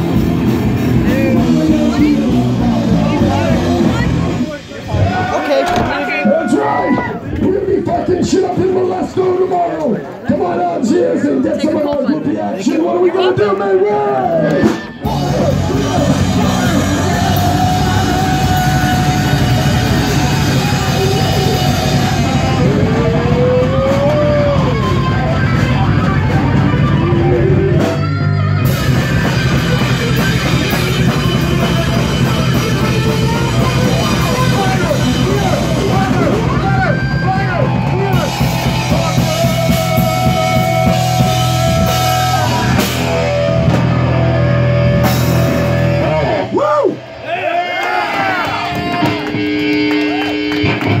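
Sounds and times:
bent electric guitar notes: 0:00.0 - 0:06.1, 0:14.3 - 0:47.2, 0:48.6 - 0:51.0
live heavy rock band: 0:00.0 - 0:09.4, 0:14.1 - 0:47.2, 0:48.1 - 0:51.0.

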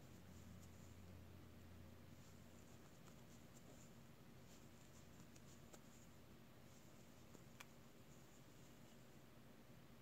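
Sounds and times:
knitting needles clicking: 0:07.2 - 0:07.8.

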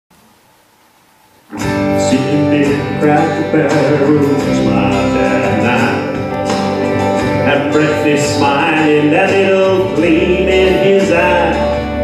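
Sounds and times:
guitar music: 0:01.5 - 0:12.0.

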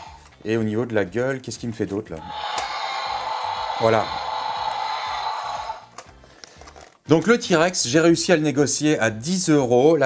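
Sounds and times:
toy dinosaur electronic roar: 0:02.2 - 0:05.9.

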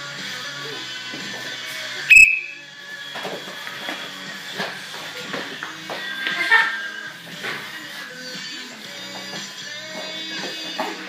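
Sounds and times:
music playing: 0:00.0 - 0:11.0
high-pitched whistle blast: 0:02.1 - 0:02.7.

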